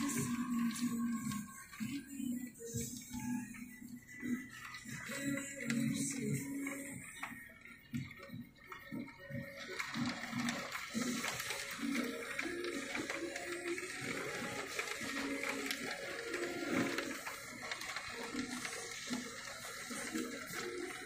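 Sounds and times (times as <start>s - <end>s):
faint music: 0.0s - 21.0s
heavy rain on window glass: 0.0s - 21.0s.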